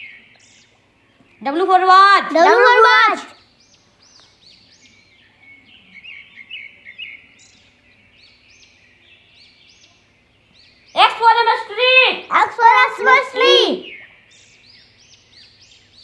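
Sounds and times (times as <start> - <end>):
faint bird chirps: 0.0 - 16.0.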